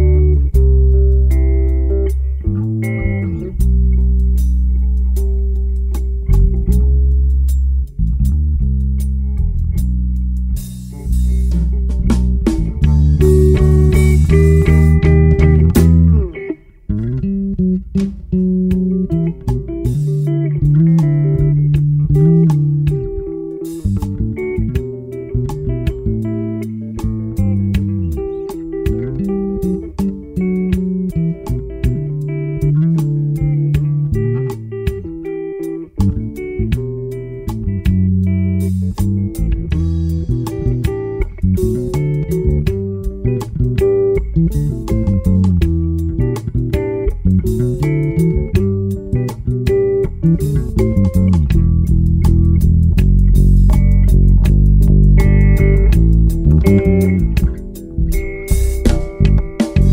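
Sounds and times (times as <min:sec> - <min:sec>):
electric bass guitar melody: 0:00.0 - 0:59.9
electric guitar: 0:00.0 - 0:59.9.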